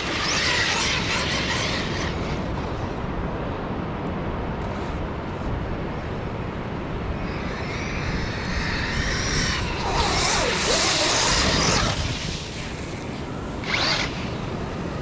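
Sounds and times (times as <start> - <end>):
rc truck electric motor whining: 0.0 - 2.6, 7.3 - 15.0.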